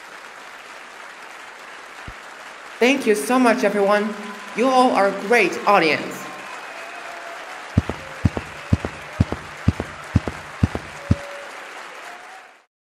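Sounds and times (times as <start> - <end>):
audience applause: 0.0 - 4.6, 6.0 - 12.7.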